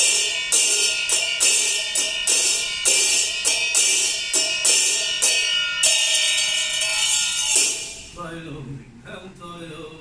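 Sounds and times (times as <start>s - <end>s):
metal percussion crashing and ringing: 0.0s - 8.2s.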